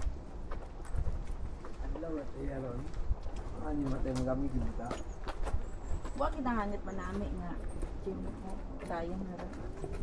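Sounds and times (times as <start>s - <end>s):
footsteps on paved path: 0.0s - 10.0s
wind rumble on microphone: 0.0s - 10.0s.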